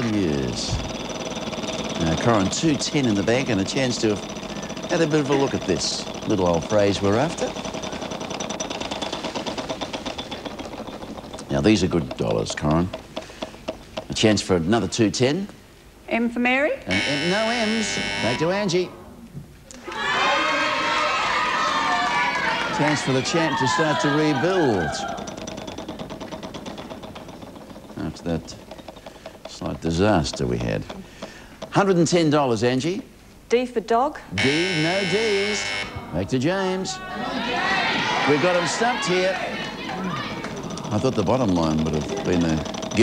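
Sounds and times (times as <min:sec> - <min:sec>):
prize wheel pointer clicking: 0:00.0 - 0:15.2, 0:16.9 - 0:18.8, 0:22.4 - 0:32.4, 0:34.4 - 0:36.1, 0:37.5 - 0:43.0.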